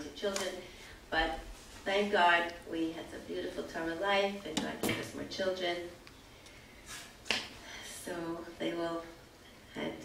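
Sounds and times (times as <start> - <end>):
soft breath: 6.2 - 8.1.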